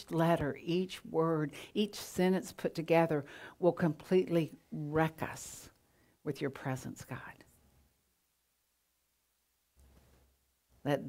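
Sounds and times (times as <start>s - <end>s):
woman speaking: 0.0s - 5.7s, 6.3s - 7.4s.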